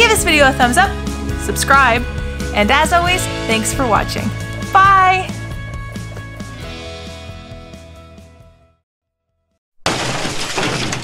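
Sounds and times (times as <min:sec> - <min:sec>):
glass shattering: 0:09.8 - 0:11.0.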